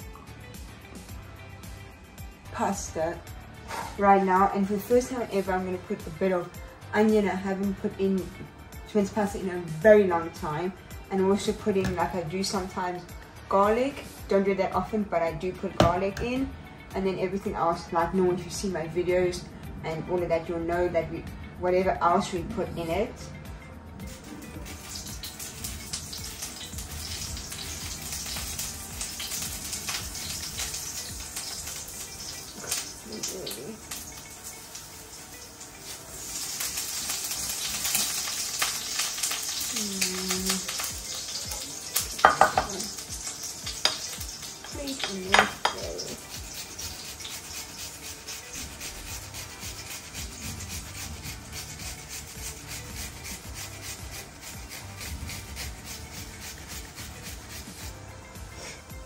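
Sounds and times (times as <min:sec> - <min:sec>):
onion grated on metal grater: 0:35.8 - 0:58.0.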